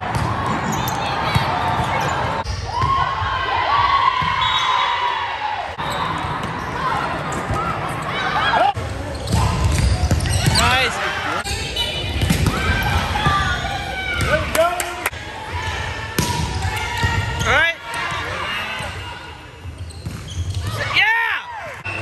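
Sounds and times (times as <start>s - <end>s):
sneakers squeaking on court floor: 0.1s - 3.0s, 5.8s - 14.4s, 18.6s - 20.9s
players' voices echoing: 5.5s - 19.7s.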